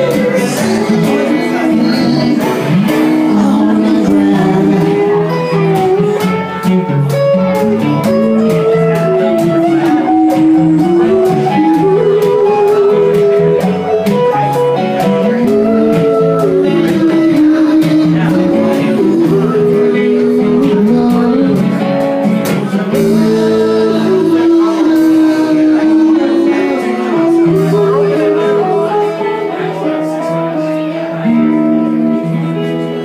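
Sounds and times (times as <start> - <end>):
person singing lead vocal: 0.0 - 31.8
strummed acoustic guitars: 0.0 - 33.0.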